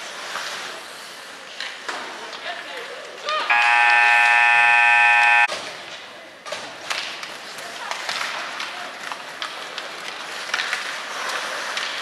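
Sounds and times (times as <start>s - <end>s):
scoreboard horn blast: 3.5s - 5.5s.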